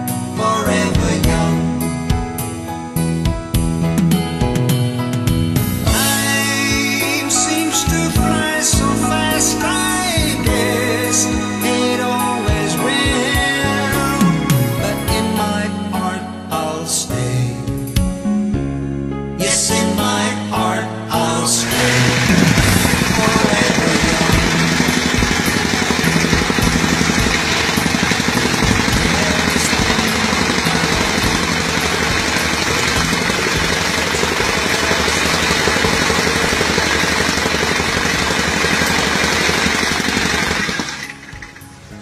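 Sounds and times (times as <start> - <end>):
demolition hammer pounding concrete: 21.6 - 41.8.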